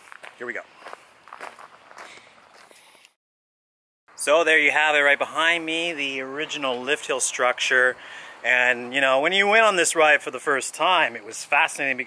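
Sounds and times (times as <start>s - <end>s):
footsteps on gravel: 0.0s - 3.2s.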